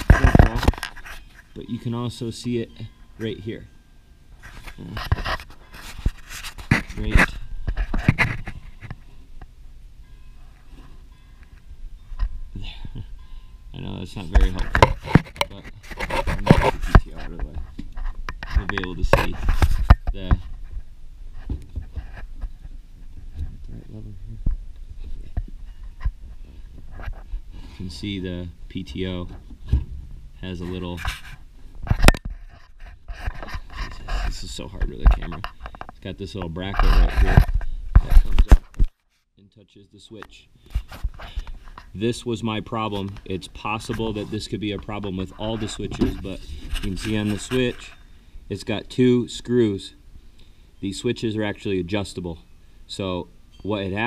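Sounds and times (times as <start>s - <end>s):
hands scraping metal linkage: 4.4s - 9.0s, 14.2s - 20.4s
low bumps: 13.8s - 38.3s.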